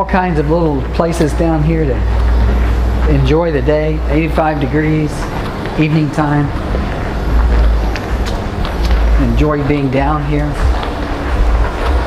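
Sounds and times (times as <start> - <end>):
low microphone rumble: 0.0 - 12.0
footsteps on pavement: 0.1 - 12.0.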